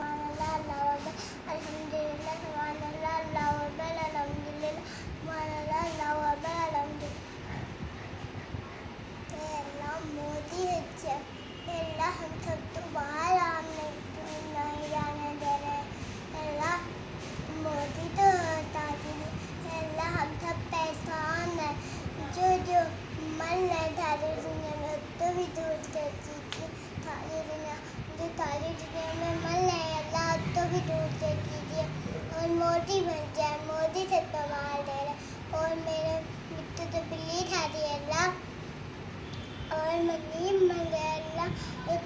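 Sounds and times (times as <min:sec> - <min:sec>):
child singing: 0:00.0 - 0:07.2, 0:09.3 - 0:16.9, 0:17.5 - 0:38.4, 0:39.7 - 0:42.0
girl chanting a prayer: 0:00.0 - 0:08.6, 0:09.3 - 0:38.5, 0:39.3 - 0:42.0.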